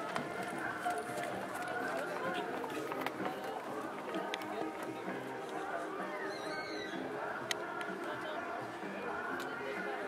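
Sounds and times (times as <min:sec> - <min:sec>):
background music: 0:00.0 - 0:10.0
indistinct talking: 0:00.0 - 0:10.0.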